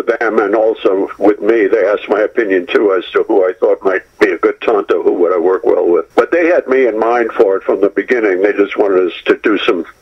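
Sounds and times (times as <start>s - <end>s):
man speaking over telephone: 0.0s - 10.0s.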